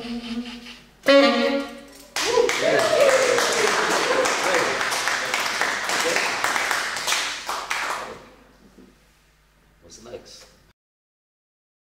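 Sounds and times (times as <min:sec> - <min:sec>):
audience applause: 0:02.2 - 0:08.2.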